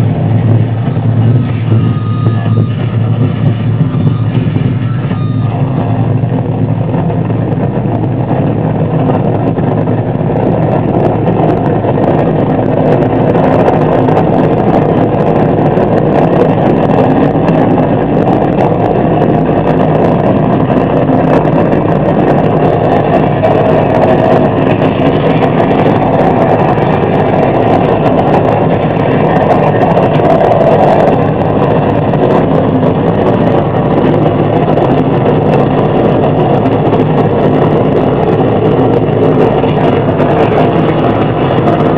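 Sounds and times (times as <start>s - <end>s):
harsh distorted noise: 0.0s - 41.9s.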